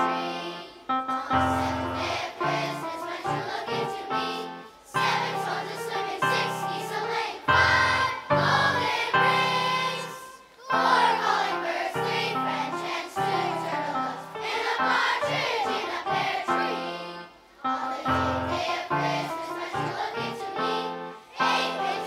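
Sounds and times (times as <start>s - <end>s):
children's choir singing: 0.0s - 22.0s.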